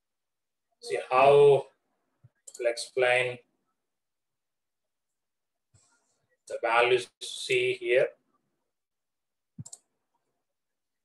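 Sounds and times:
small clicks: 2.2 - 2.7, 9.6 - 9.9.

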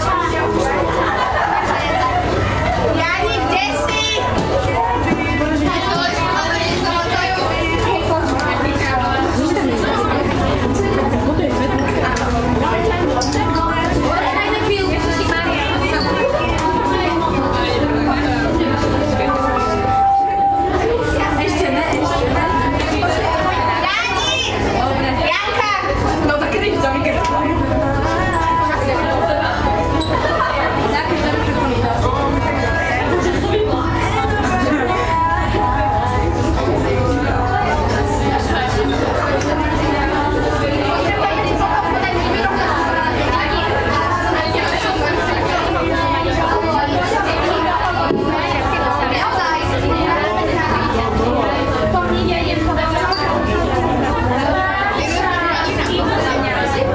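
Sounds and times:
background chatter: 0.0 - 56.9.

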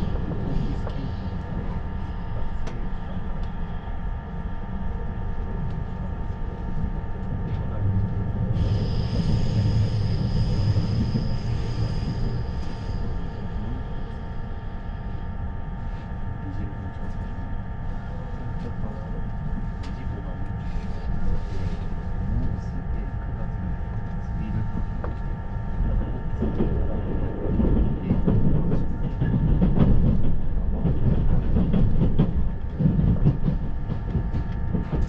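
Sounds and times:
train wheels rumbling: 7.2 - 14.9, 18.0 - 35.0.

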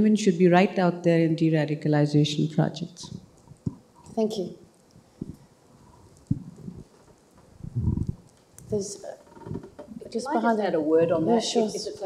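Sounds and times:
microphone handling thumps: 5.0 - 10.0
dull rumbling microphone knock: 6.3 - 6.9, 7.6 - 8.2.

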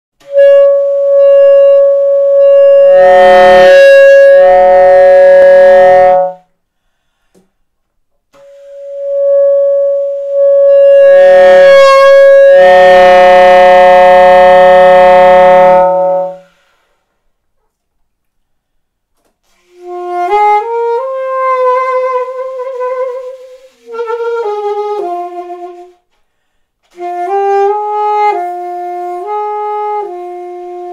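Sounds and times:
saxophone long held notes: 0.2 - 6.5, 8.4 - 16.7, 19.6 - 26.0, 26.9 - 30.9.

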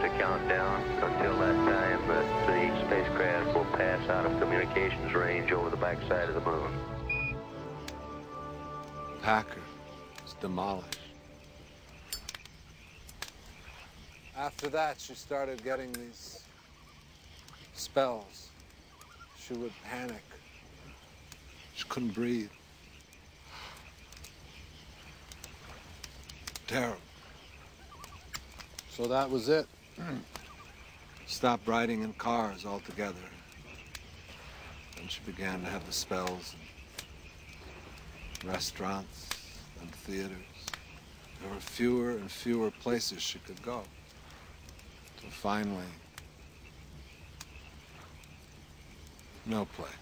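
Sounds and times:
campfire crackling: 0.0 - 50.0
crickets chirping: 0.0 - 50.0
low steady background noise: 0.0 - 50.0
fire pops: 8.7 - 50.0
sharp clicks: 10.1 - 13.5, 25.2 - 26.7, 28.0 - 29.2, 40.6 - 41.0.

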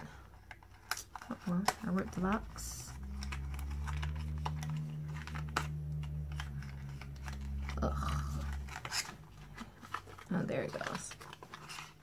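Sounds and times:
cardboard box being unpacked: 0.0 - 12.0
clicks taps and crinkles: 0.0 - 12.0.

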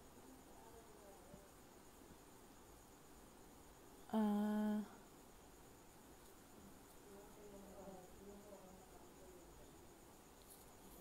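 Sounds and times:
woman humming: 4.1 - 5.0.

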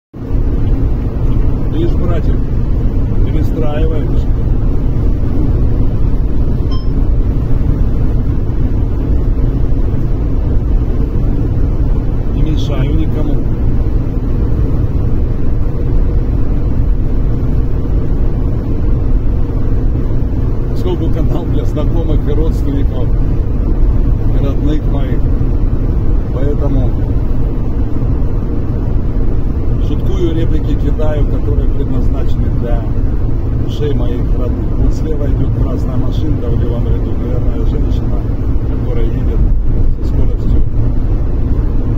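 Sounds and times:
car road and engine noise: 0.1 - 41.9.

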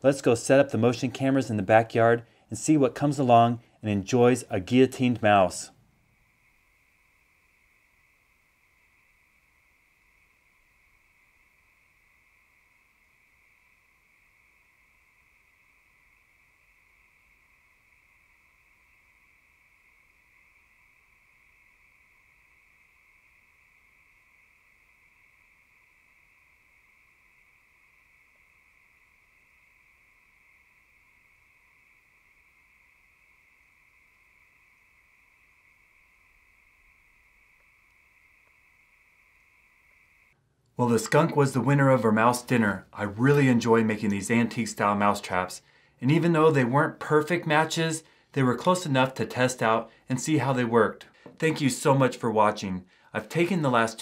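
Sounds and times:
night insects chorus: 0.0 - 40.4, 41.0 - 54.0.

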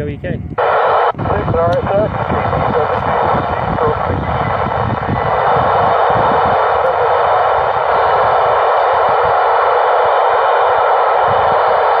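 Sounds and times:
radio static hiss: 0.6 - 12.0.

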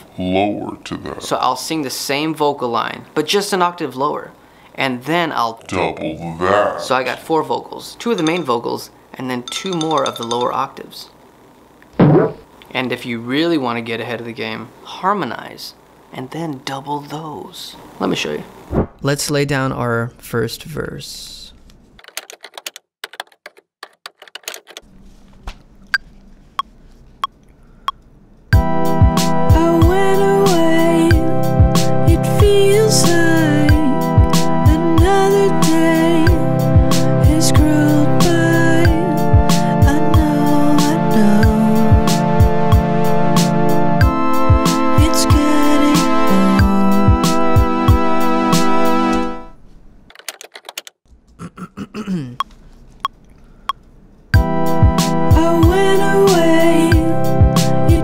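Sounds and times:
soft thump: 12.0 - 12.4
computer keyboard clicks: 22.0 - 24.8, 50.1 - 51.0
synth pad and drum beat: 28.6 - 40.6, 41.4 - 48.9, 54.4 - 58.0.

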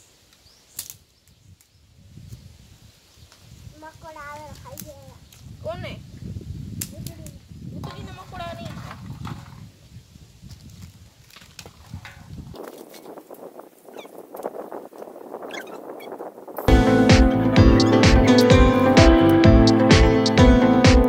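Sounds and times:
wind rumble on microphone: 1.0 - 16.7.

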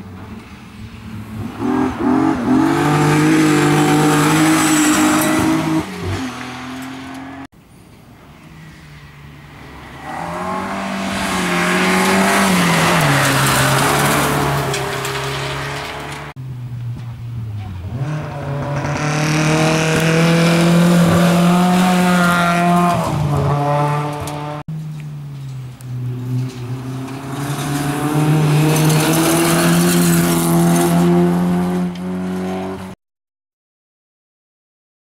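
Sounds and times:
rally car engines accelerating: 1.3 - 7.5, 9.8 - 16.4, 17.4 - 33.0
tyres throwing gravel: 10.6 - 16.3.

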